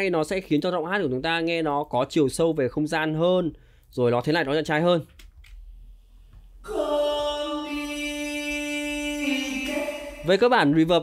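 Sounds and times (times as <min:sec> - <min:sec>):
solo voice singing long note: 0:06.6 - 0:10.4.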